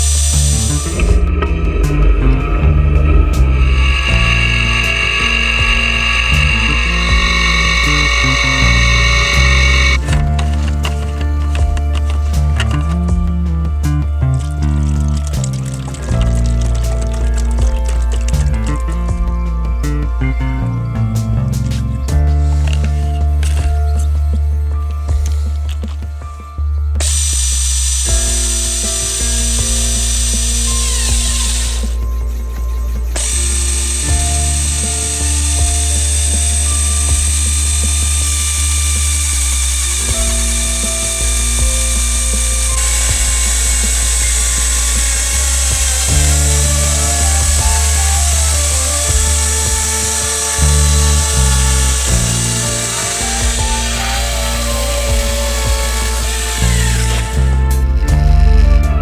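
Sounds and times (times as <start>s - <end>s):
electric chainsaw cutting log: 0.0s - 19.0s, 27.0s - 32.2s, 33.0s - 59.0s
background music with chords: 0.0s - 59.0s.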